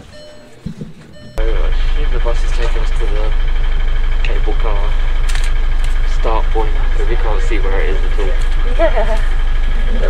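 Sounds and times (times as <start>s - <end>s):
bus engine drone: 0.0s - 10.0s.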